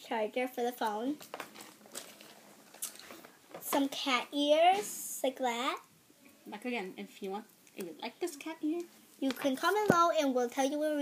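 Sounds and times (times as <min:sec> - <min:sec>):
bag rustling and crinkling: 0:01.2 - 0:03.7.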